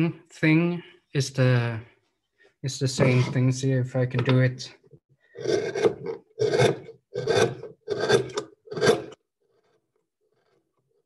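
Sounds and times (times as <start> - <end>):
gouge scraping wood: 5.4 - 10.6.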